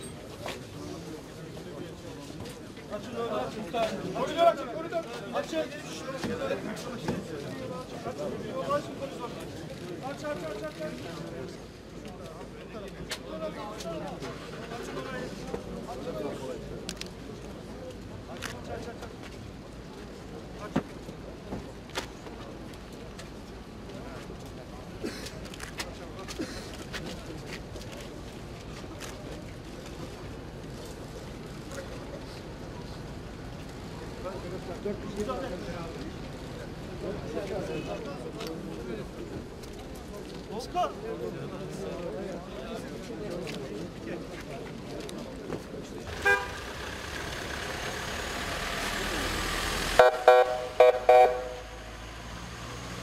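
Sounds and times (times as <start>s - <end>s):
crowd shuffling hubbub: 0.0s - 53.0s
vehicle horn toots: 46.1s - 46.7s, 50.0s - 51.8s
vehicle driving past: 46.1s - 53.0s.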